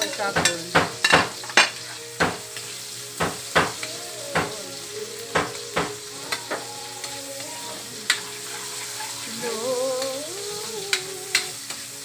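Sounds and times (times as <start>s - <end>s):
tomatoes sizzling in oil: 0.0s - 12.0s.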